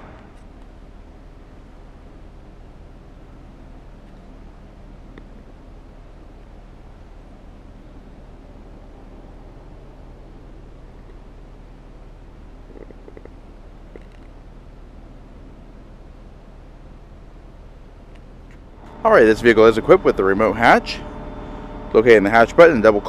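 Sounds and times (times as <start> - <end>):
low hum inside car cabin: 0.0 - 23.0.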